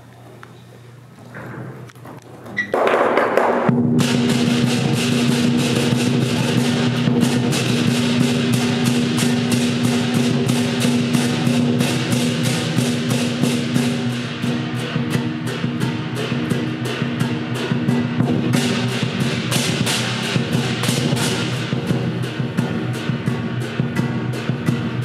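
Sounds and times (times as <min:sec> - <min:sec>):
percussion band fast beat: 0:02.7 - 0:25.0
cymbal clashes: 0:03.8 - 0:25.0.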